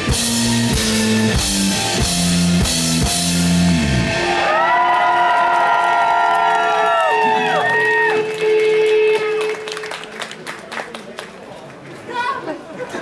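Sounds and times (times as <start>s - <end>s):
rock band drums and bass: 0.0s - 4.9s
audience cheering: 4.0s - 10.5s.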